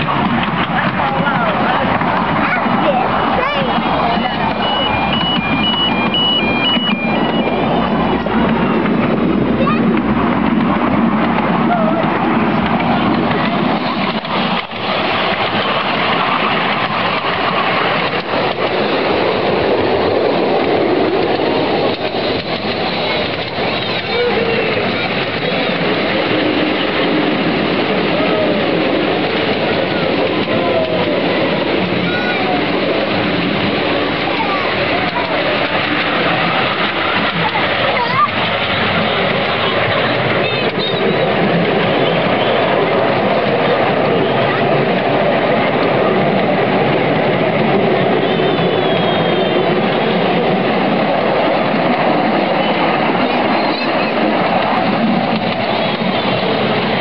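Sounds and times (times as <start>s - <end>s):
miniature train wheels on rails: 0.0s - 57.0s.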